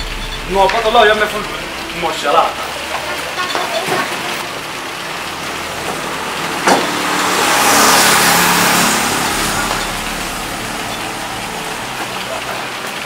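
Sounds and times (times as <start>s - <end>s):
street traffic noise: 0.0s - 13.0s
vehicle passing: 0.0s - 13.0s.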